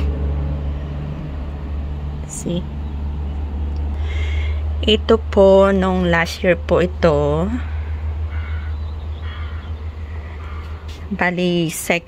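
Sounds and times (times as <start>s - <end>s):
low rumble of traffic: 0.0s - 12.0s.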